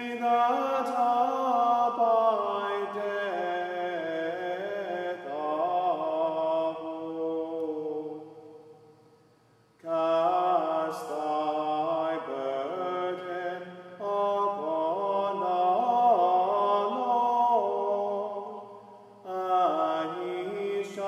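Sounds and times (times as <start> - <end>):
man singing chant: 0.0 - 8.6, 9.8 - 21.0
singer breathing: 8.9 - 9.8.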